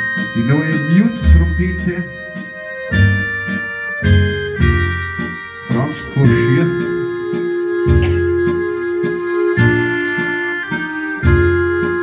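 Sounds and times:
electronic organ-like accordion: 0.0s - 12.0s.

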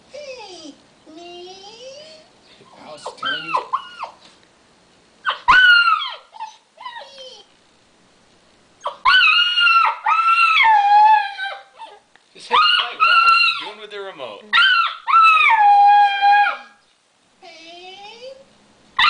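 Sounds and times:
puppy howling: 0.2s - 4.2s, 5.2s - 7.5s, 8.8s - 13.8s, 14.5s - 16.8s.

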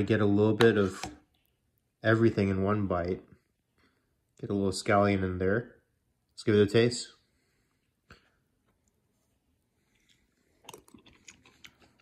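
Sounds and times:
person chewing food: 8.1s - 12.0s.

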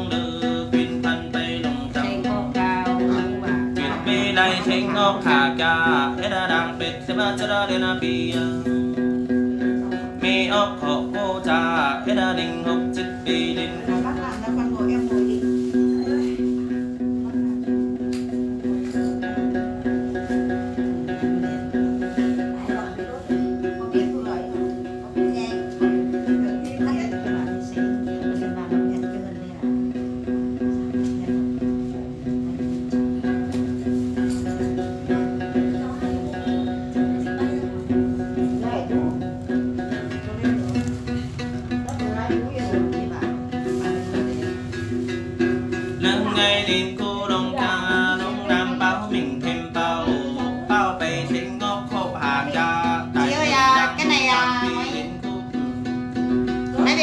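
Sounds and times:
person singing: 0.0s - 16.6s, 33.0s - 57.0s
plucked lute: 0.0s - 57.0s.

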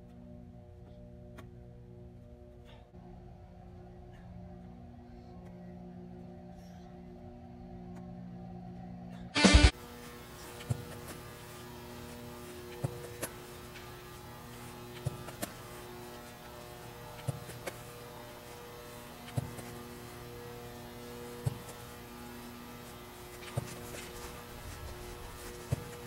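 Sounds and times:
steady electrical hum: 0.0s - 26.0s.

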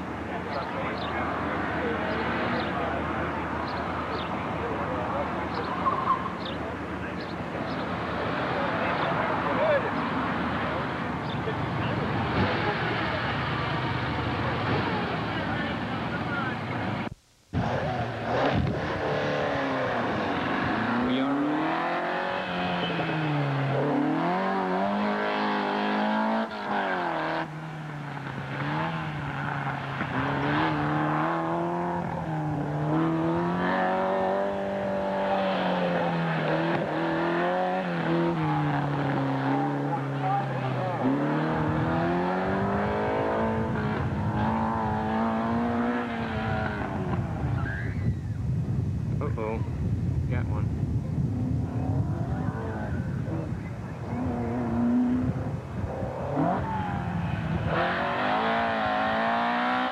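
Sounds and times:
car engine revving: 0.0s - 47.8s, 50.4s - 59.9s.

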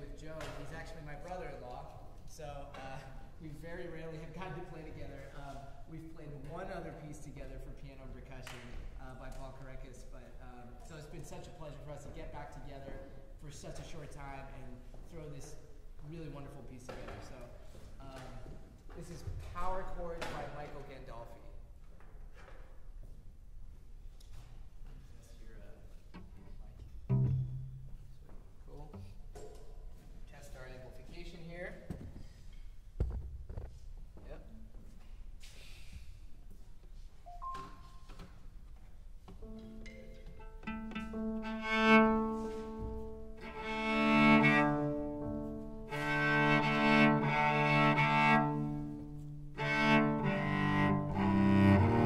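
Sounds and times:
low cello note: 26.2s - 28.2s, 39.4s - 52.0s.

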